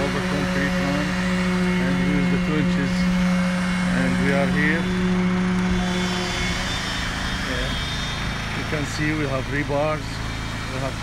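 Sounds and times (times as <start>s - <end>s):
pump and vibrator droning: 0.0s - 11.0s.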